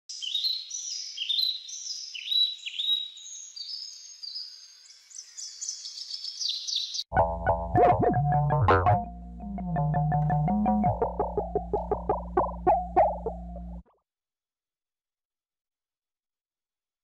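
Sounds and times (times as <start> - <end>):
electric guitar and bass music: 7.1 - 13.8.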